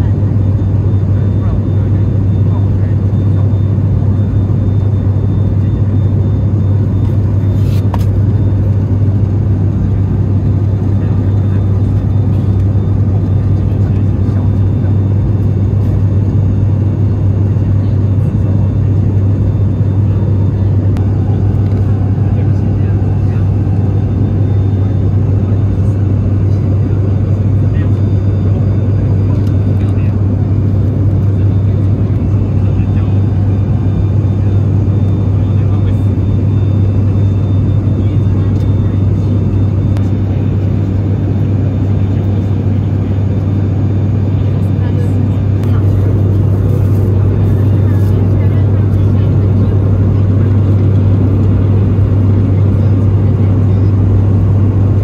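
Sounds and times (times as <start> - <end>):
propeller low hum: 0.0 - 55.0.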